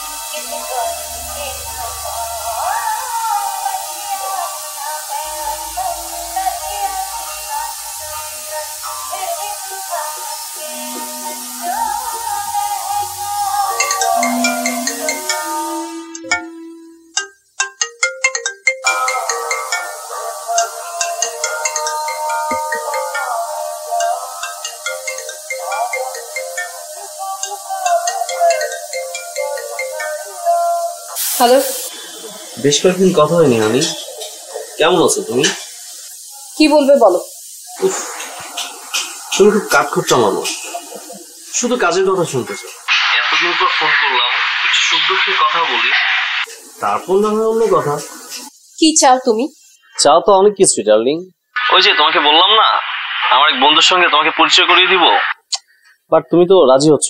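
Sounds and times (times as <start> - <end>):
line hiss: 0.0 - 50.0, 51.5 - 55.9
smartphone ringtone melody: 10.6 - 31.2
man's voice: 32.6 - 34.2, 34.8 - 35.6, 39.4 - 40.6, 41.6 - 46.0, 46.8 - 48.1, 50.0 - 55.3
voice through telephone: 51.6 - 55.4.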